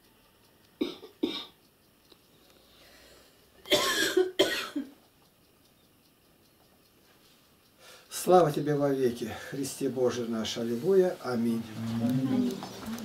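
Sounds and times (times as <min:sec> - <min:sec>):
person coughing: 0:00.8 - 0:01.6, 0:03.7 - 0:04.9.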